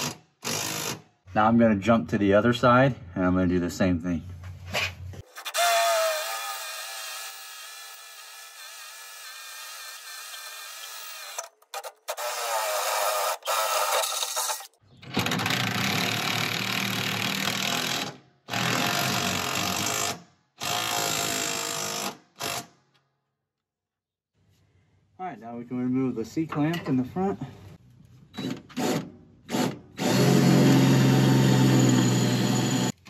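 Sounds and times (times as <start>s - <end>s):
cordless drill whining through metal: 0.0s - 1.0s, 5.3s - 22.7s, 28.3s - 33.0s.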